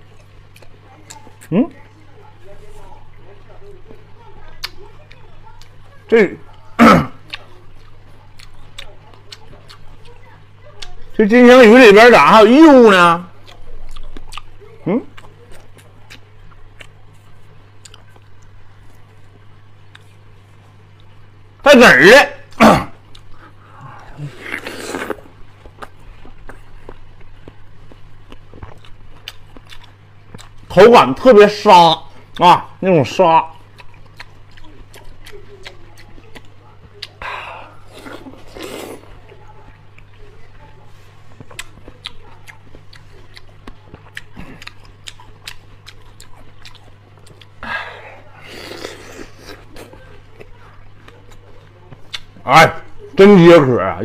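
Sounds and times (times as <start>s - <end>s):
wet crunchy chewing: 6.9s - 11.0s, 13.3s - 21.2s, 22.5s - 30.8s, 33.4s - 47.6s, 48.3s - 52.4s
wet clicks of biting watermelon: 51.3s - 52.4s.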